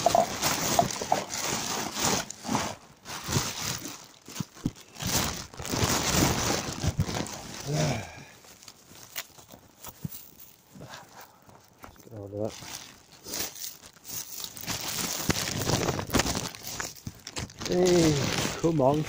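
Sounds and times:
plastic bags crinkling: 0.0s - 19.0s.

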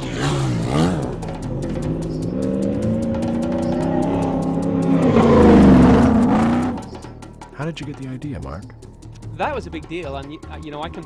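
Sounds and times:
rally car engine revving: 0.0s - 7.3s.

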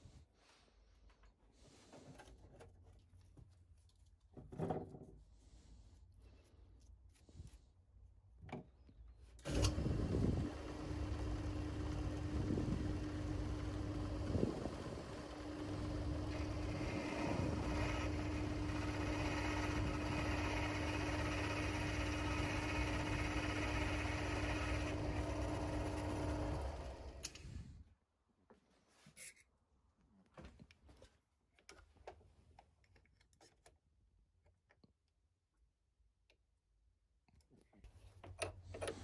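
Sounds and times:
metal lathe running: 9.6s - 27.1s.

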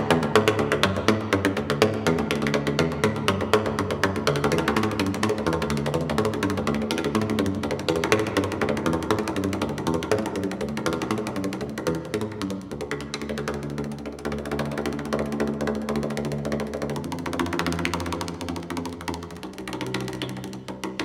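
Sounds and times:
percussion on pipes and cans: 0.0s - 21.0s.

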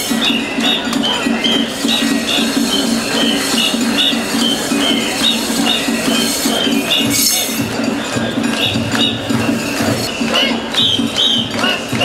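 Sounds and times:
festival music with piping melody: 0.0s - 12.0s.

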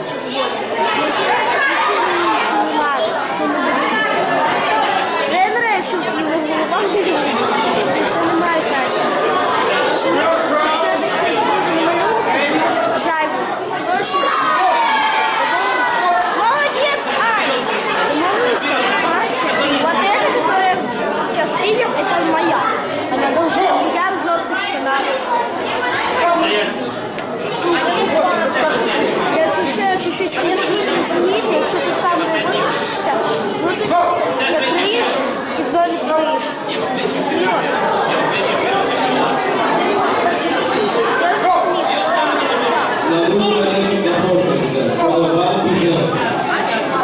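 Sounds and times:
overlapping voices chatter: 0.0s - 47.0s.

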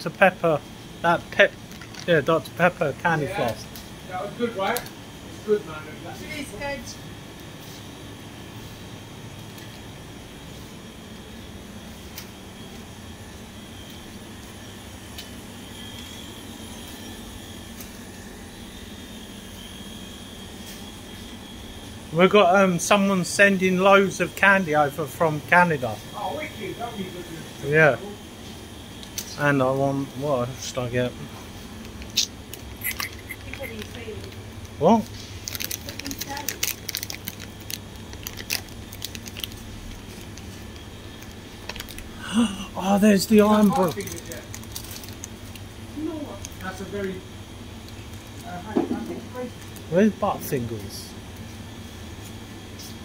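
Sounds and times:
faint high whine: 0.0s - 53.0s
shop interior hum and hiss: 0.0s - 53.0s.

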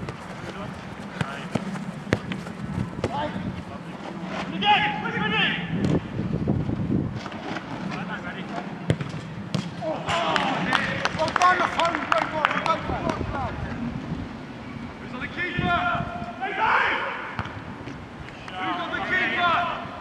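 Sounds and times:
ball being kicked: 0.0s - 3.2s, 8.9s - 9.8s
players shouting: 9.6s - 13.6s, 15.1s - 17.4s, 18.3s - 20.0s.

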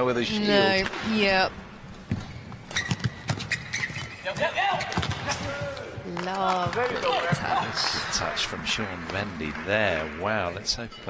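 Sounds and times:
shoes squeaking on court: 1.8s - 6.0s.

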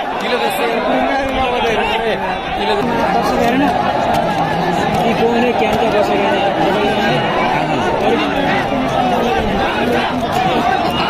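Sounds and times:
crowd chattering: 0.0s - 11.0s.

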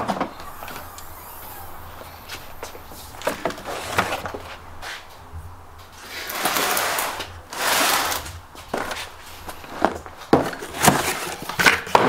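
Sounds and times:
rubbing and whirring: 0.0s - 10.0s.

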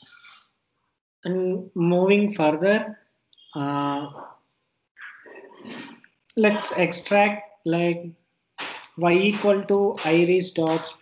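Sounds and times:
man saying uh: 6.4s - 7.2s.

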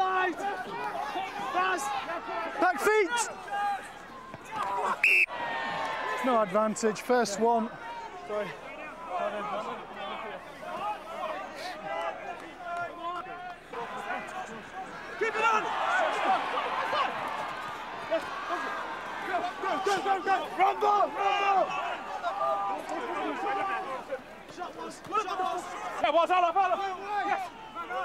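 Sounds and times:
crowd noise: 0.0s - 28.0s
men shouting: 13.8s - 28.0s.

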